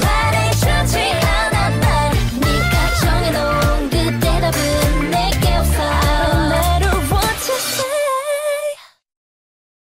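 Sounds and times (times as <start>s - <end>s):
person singing: 0.0s - 8.8s
pop song with bass and drums: 0.0s - 8.8s.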